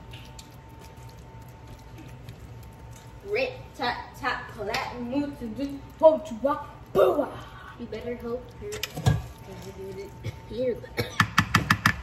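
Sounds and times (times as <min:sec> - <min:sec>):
wooden spoon stirring in a pan: 0:00.0 - 0:03.5.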